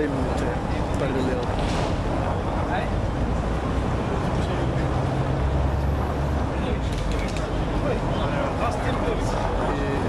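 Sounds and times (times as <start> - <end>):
street traffic noise: 0.0 - 10.0.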